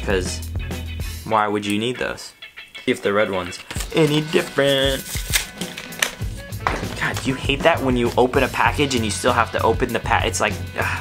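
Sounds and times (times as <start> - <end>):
background music: 0.0 - 11.0
packaging being torn open: 3.7 - 6.4.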